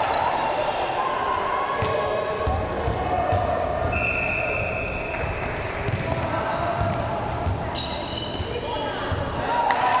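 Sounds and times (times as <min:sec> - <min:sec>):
sneakers squeaking on court: 0:01.6 - 0:09.5
basketball bouncing on gym floor: 0:01.8 - 0:04.0, 0:05.8 - 0:09.2.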